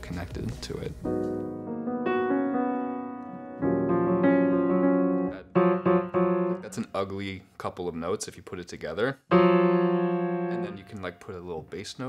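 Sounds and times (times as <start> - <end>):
grand piano chords: 0.9 - 7.1, 9.3 - 11.4
person speaking: 5.2 - 5.6, 6.5 - 9.3, 10.5 - 12.0.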